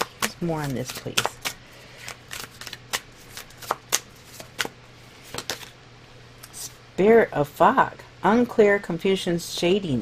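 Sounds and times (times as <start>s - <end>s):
cards being shuffled: 0.0s - 5.8s.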